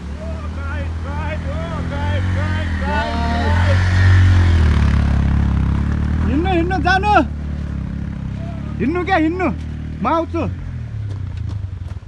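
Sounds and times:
motorcycle engine passing: 0.0s - 12.0s
person calling out: 0.2s - 3.8s.

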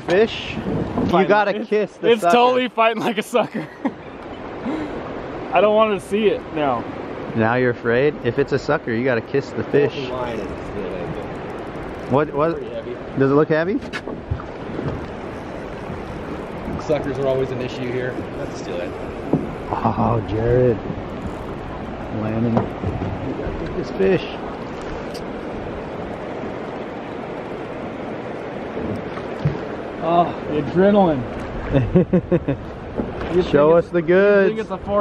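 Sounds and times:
wind rumble on microphone: 0.0s - 1.4s, 10.1s - 34.1s
river water washing: 0.0s - 35.0s.

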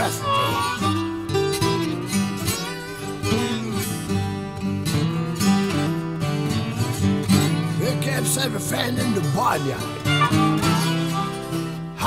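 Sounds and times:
acoustic guitars playing blues: 0.0s - 12.0s.

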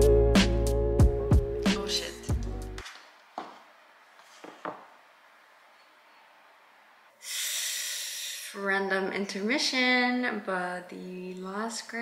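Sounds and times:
loud breathy exhale: 7.2s - 8.6s.

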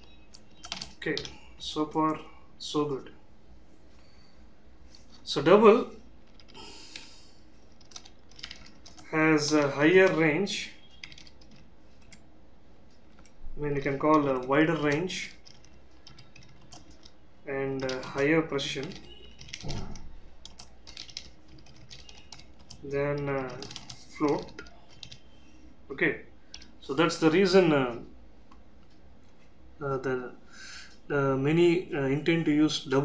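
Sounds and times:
quiet keyboard keystrokes: 0.0s - 2.2s, 7.7s - 10.2s, 10.9s - 12.3s, 12.9s - 17.2s, 17.8s - 25.2s.

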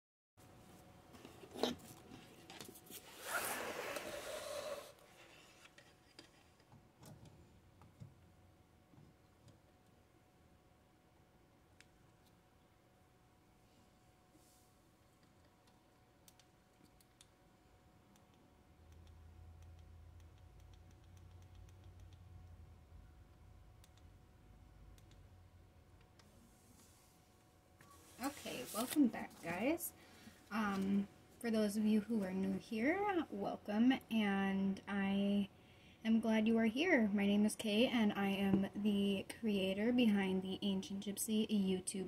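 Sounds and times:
low steady hum: 0.4s - 42.0s.

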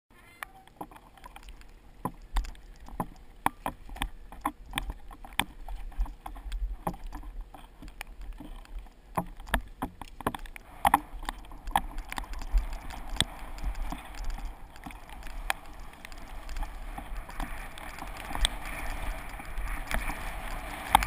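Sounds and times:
wind rumble on microphone: 2.1s - 21.0s
bike rattling over rough trail: 2.4s - 21.0s.

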